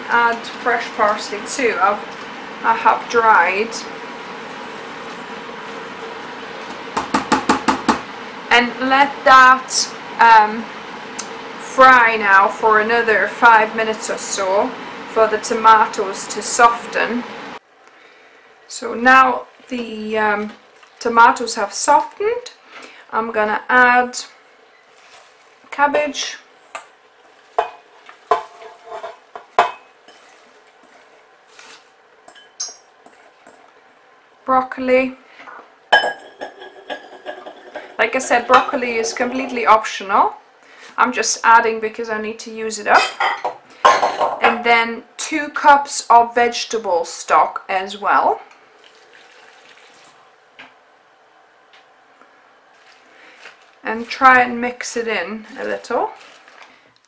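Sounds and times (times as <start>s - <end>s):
vegetables sizzling in a pot: 0.0s - 17.6s, 18.8s - 41.4s, 48.6s - 50.5s, 52.7s - 56.9s
faint steady hum: 0.0s - 57.0s
cabbage rustling: 24.3s - 29.4s, 30.1s - 32.0s, 52.7s - 57.0s.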